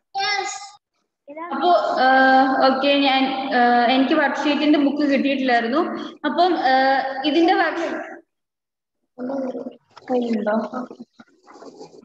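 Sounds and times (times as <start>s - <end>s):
broken video call speech: 0.0s - 8.2s, 9.2s - 12.0s.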